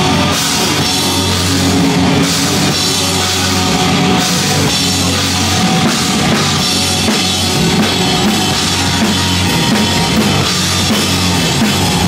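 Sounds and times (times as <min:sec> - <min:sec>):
bass guitar: 0:00.0 - 0:12.0
drum kit: 0:00.0 - 0:12.0
electric guitar: 0:00.0 - 0:12.0.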